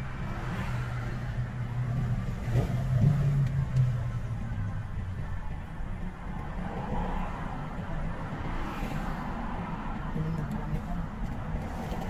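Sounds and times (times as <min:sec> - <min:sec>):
car engine hum: 0:00.0 - 0:12.0
road noise inside car: 0:00.0 - 0:12.0.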